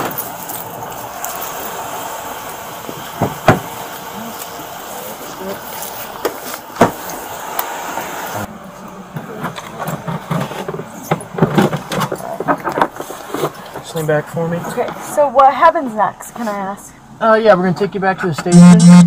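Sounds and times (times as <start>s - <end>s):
street noise: 0.0s - 17.2s
knocks and rustles: 9.4s - 14.0s.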